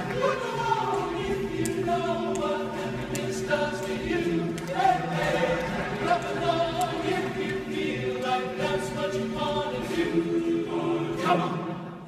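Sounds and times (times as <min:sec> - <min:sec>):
men's chorus singing a cappella: 0:00.0 - 0:12.0.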